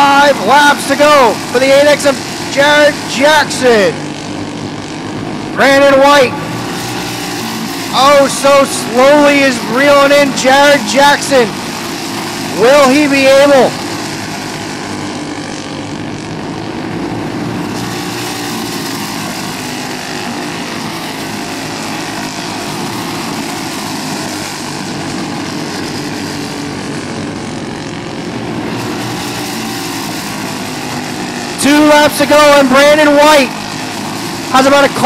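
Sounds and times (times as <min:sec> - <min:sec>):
kart engines droning: 0:00.0 - 0:35.0.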